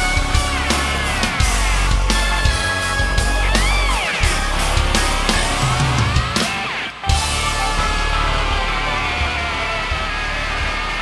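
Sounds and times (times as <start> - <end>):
sustained chords over bass: 0.0 - 11.0.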